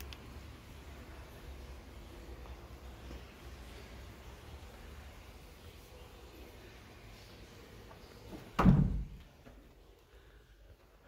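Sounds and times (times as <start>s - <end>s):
heavy thump: 8.5s - 9.2s.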